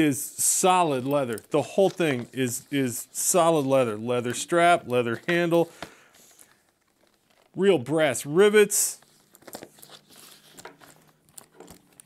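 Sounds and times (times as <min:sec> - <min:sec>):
leather bag rustling: 0:00.4 - 0:08.2, 0:09.0 - 0:12.0.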